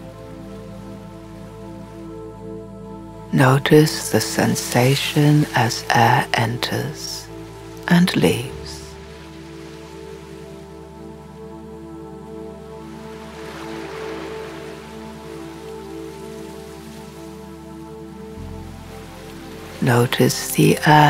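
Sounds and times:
ambient synth music: 0.0 - 21.0
low drone: 0.0 - 21.0
soft rushing wash: 0.0 - 21.0.

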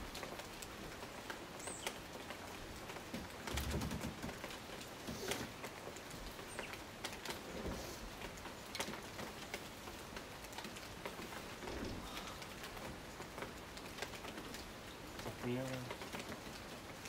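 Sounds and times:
rain on foliage: 0.0 - 17.0.

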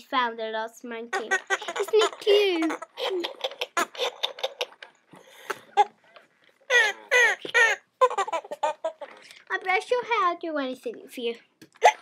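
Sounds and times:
toy chimpanzee calls: 1.1 - 4.8, 6.7 - 9.1.

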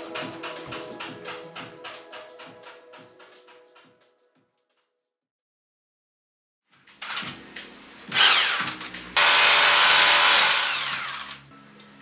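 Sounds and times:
power tool cutting into wall: 8.1 - 11.4.

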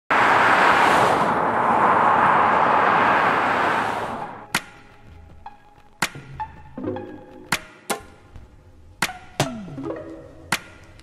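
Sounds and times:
vehicle passing on road: 0.1 - 4.5
soft pitched music notes: 4.4 - 11.0.

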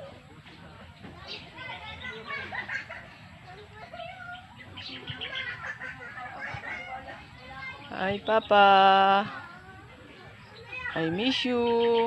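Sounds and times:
birds calling: 1.2 - 12.0.

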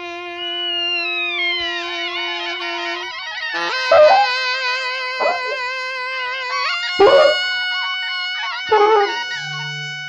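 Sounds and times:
held wavering rock note: 1.2 - 10.0.

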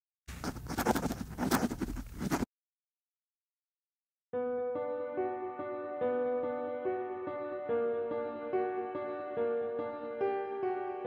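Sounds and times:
pen scratching on paper: 0.3 - 2.5.

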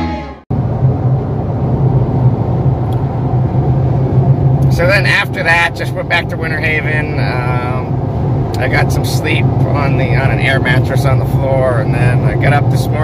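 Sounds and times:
car engine and road hum: 0.0 - 13.0.

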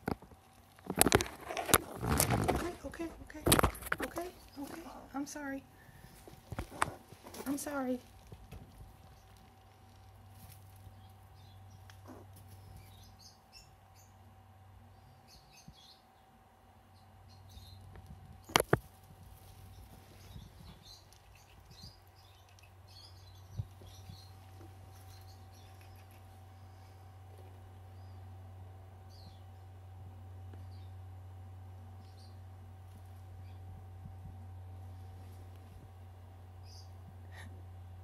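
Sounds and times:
squirrel clicking and scratching nuts: 0.0 - 5.3, 6.1 - 13.1, 17.6 - 26.6.

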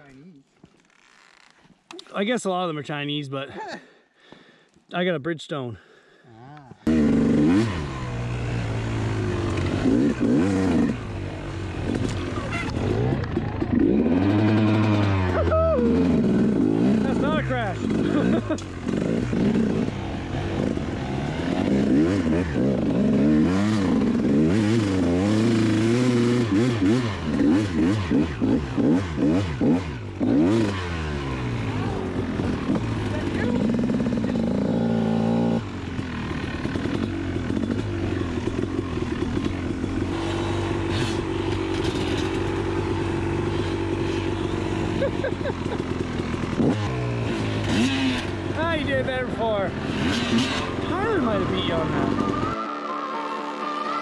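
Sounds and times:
dirt bike engine revving: 6.8 - 54.0.

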